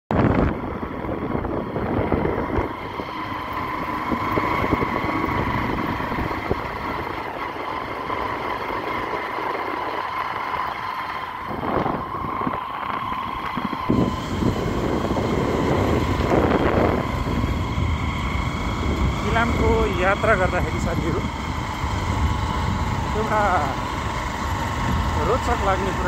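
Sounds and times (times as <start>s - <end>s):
motorcycle engine hum: 0.0s - 26.0s
road and air noise: 0.1s - 26.0s.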